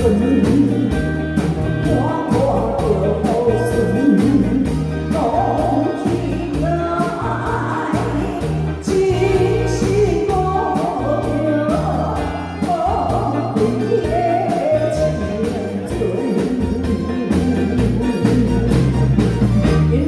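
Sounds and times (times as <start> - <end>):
woman singing into a microphone: 0.0 - 18.8, 19.7 - 20.0
live band playing: 0.0 - 20.0.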